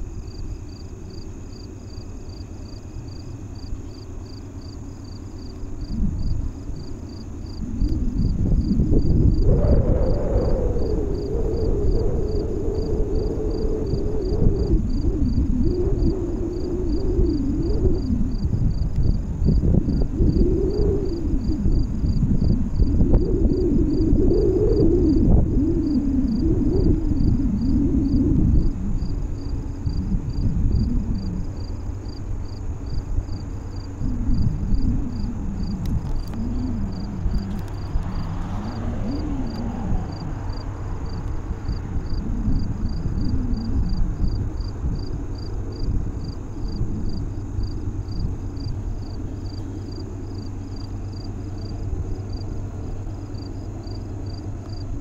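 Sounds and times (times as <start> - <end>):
insects chirping: 0.0 - 55.0
low wavering rumble with hum: 0.0 - 55.0.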